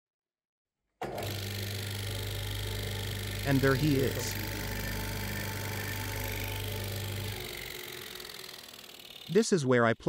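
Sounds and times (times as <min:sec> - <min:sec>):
drum sander humming: 0:01.0 - 0:09.5.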